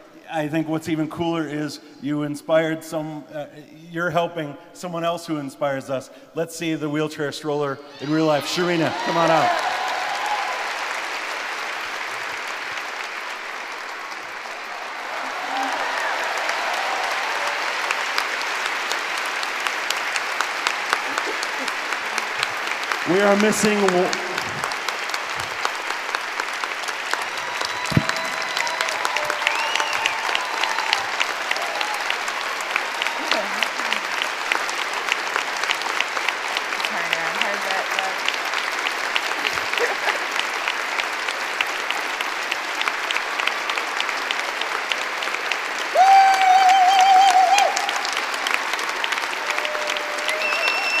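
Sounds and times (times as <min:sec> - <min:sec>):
audience applauding: 0:07.9 - 0:51.0.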